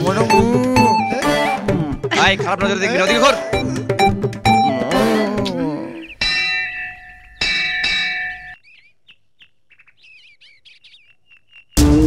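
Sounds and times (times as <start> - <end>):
loud music: 0.0 - 5.6, 11.8 - 12.0
faint bird chirps: 5.6 - 12.0
temple bell ringing: 6.2 - 8.6.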